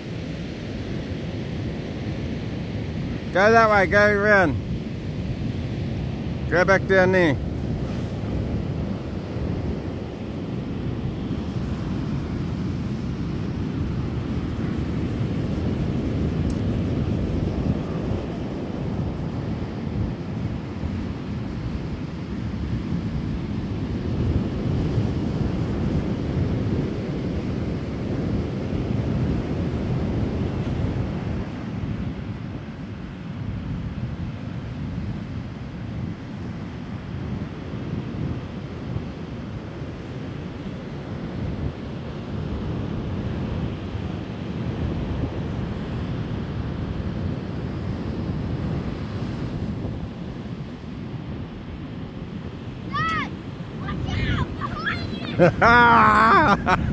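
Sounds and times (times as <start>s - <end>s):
wind buffeting microphone: 0.0s - 55.7s, 56.5s - 56.9s
ocean surf: 0.0s - 56.9s.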